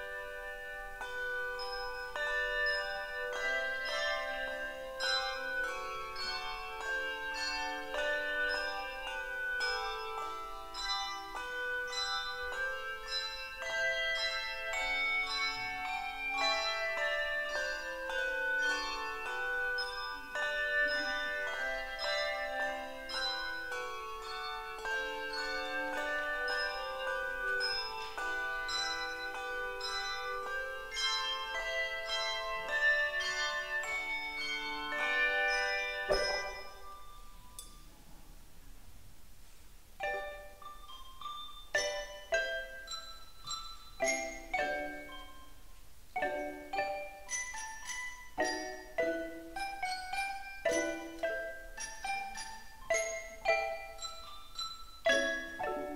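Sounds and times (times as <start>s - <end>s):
handbells ringing: 0.0s - 37.8s, 40.0s - 45.6s, 46.2s - 55.9s.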